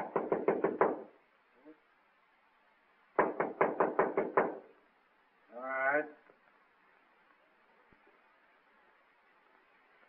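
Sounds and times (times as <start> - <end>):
knocking on wooden door: 0.0 - 1.1, 3.2 - 4.7.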